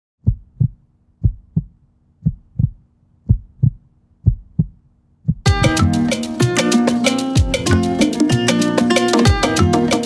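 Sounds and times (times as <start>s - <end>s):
heartbeat thumps: 0.2s - 5.8s.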